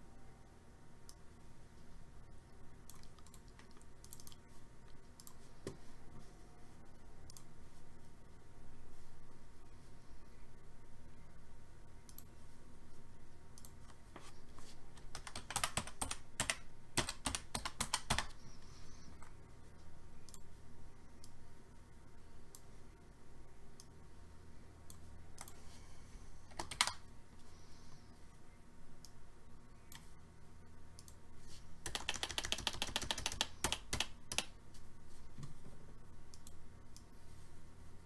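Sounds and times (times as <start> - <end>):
keyboard typing: 2.8 - 4.4, 14.9 - 19.4, 24.9 - 25.6, 26.5 - 27.0, 31.8 - 34.6.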